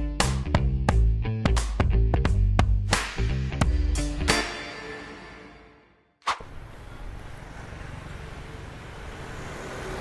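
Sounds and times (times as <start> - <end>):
short sharp click: 6.2 - 6.5
road traffic noise: 6.2 - 10.0.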